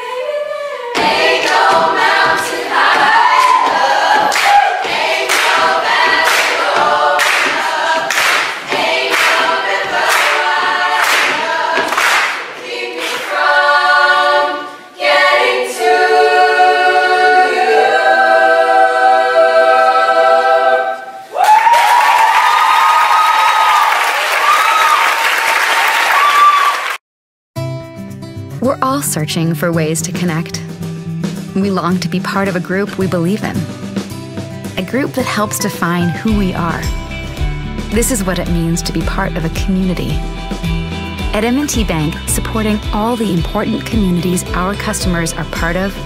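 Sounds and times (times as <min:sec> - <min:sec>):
women's a cappella choir singing: 0:00.0 - 0:21.3
audience applause and cheering: 0:02.7 - 0:12.5, 0:21.2 - 0:27.0.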